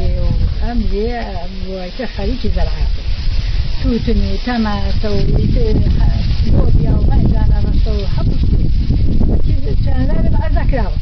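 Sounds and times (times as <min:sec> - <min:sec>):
woman talking: 0:00.0 - 0:03.0, 0:03.8 - 0:08.4, 0:09.3 - 0:11.0
steady background hiss: 0:00.0 - 0:11.0.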